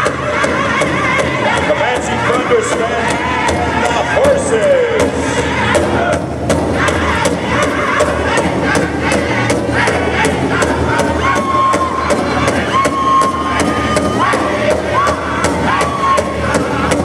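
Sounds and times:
large drum steady beat: 0.0 - 17.0
singers in high voices: 0.0 - 17.0.

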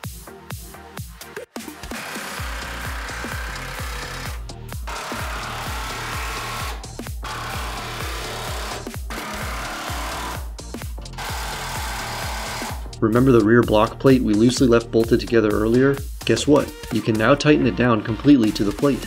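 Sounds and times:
background music with bass beat: 0.0 - 19.0
cordless power tool running bolts: 1.6 - 13.0.

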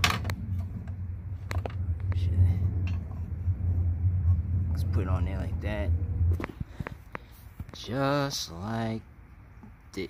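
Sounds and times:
steady low rumble: 0.0 - 9.9.

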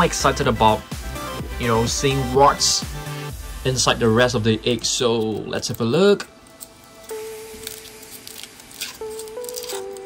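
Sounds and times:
background music with held notes: 0.0 - 10.0
foil wrapper crinkling: 5.2 - 10.0.

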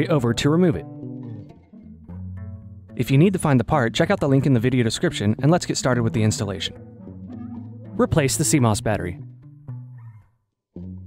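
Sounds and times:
low strings background music: 0.0 - 10.2.

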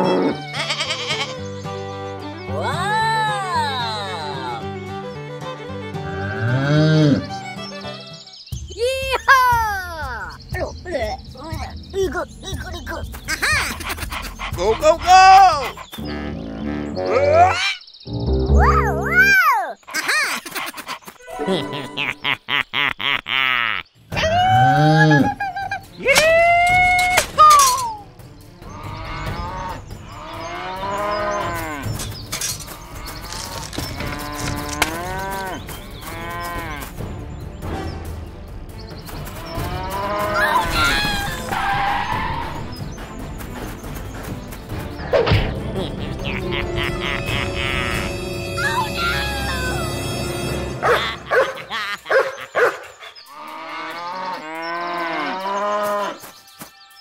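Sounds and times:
cows mooing: 6.0 - 7.3, 28.8 - 36.9, 53.3 - 56.2
dog yelping: 50.8 - 52.9.

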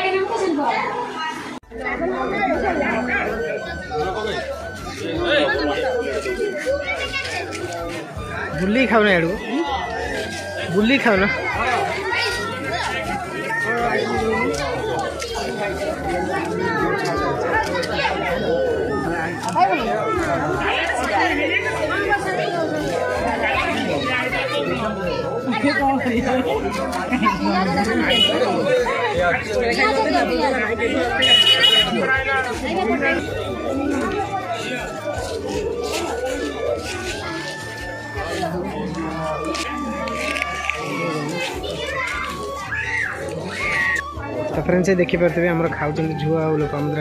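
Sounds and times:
chatter of many people: 0.0 - 47.0
background music: 1.9 - 47.0.

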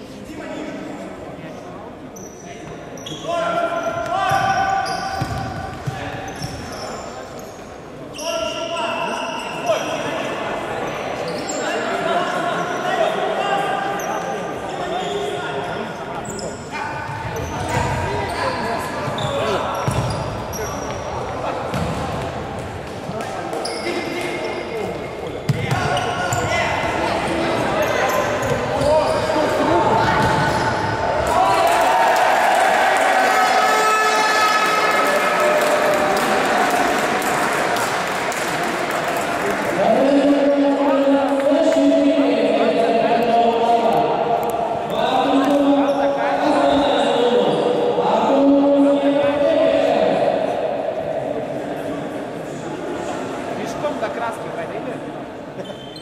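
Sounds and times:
players calling and shouting: 2.2 - 38.6
ball kicked and bouncing: 19.8 - 20.1.

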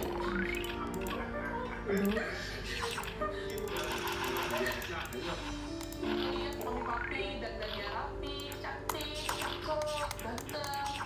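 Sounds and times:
video game music: 0.0 - 11.0.

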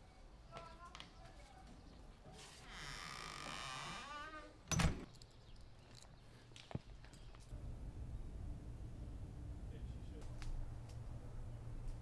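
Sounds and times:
wooden door creaking: 2.7 - 5.1
door shutting with thud: 4.7 - 5.1.

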